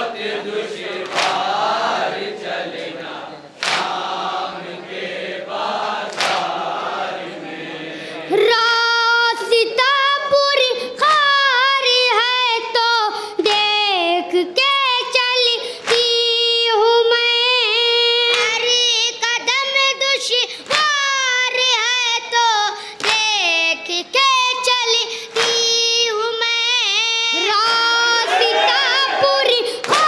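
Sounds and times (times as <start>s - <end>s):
group chanting in chorus: 0.0s - 8.9s, 27.3s - 30.0s
hands slapping chest: 1.0s - 1.5s, 3.6s - 4.1s, 6.1s - 6.6s
boy singing through loudspeakers: 8.2s - 30.0s.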